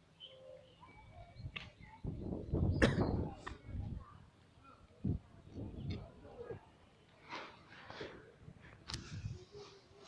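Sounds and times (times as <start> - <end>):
faint bird chirps: 0.0 - 3.4.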